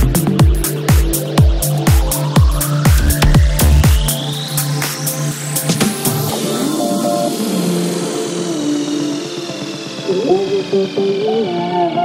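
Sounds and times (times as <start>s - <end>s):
sliding synth notes: 0.0s - 12.0s.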